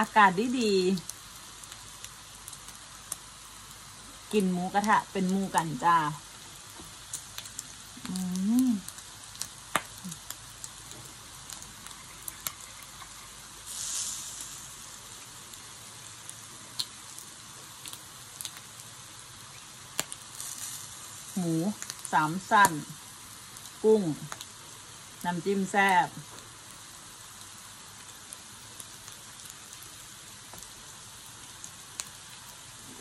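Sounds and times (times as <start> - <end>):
meat sizzling on grill: 0.0 - 33.0
fat popping: 6.6 - 13.2.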